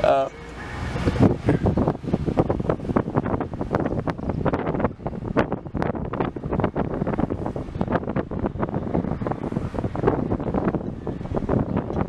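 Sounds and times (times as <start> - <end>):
car rumbling in motion: 0.0 - 12.0
wind buffeting microphone: 0.0 - 12.0.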